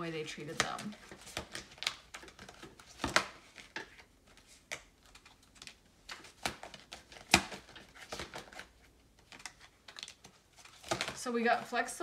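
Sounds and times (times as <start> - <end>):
cards tapping: 0.5 - 11.2.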